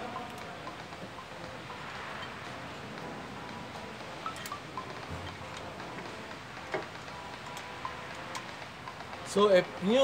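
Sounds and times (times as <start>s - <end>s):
high ringing metal pings: 4.2s - 5.6s.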